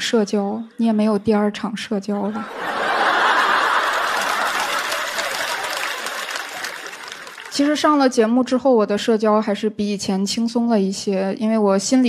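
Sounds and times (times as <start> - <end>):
audience laughing: 2.2 - 7.5.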